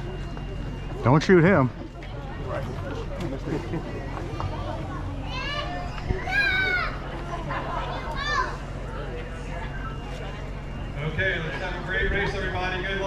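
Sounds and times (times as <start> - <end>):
children chattering: 0.0 - 13.0
children's high-pitched calls: 4.5 - 9.0.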